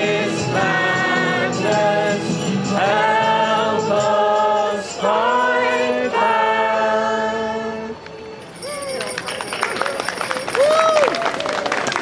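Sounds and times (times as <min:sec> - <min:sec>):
group singing a carol: 0:00.0 - 0:08.0
scattered clapping: 0:08.8 - 0:12.0.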